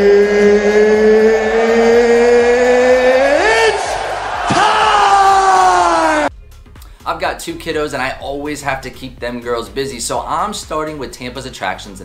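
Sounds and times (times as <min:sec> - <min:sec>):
man shouting drawn-out vowel: 0:00.0 - 0:04.0
arena crowd noise: 0:01.4 - 0:04.9.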